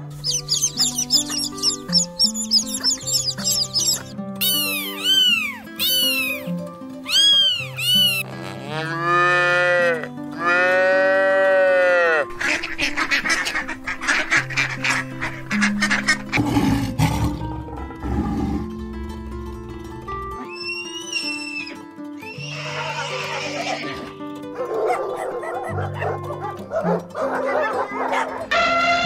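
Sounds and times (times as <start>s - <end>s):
dog calling: 0.0s - 6.5s, 7.1s - 8.2s, 24.6s - 28.5s
background music: 0.0s - 29.0s
horse whinnying: 7.1s - 12.2s, 20.5s - 24.2s.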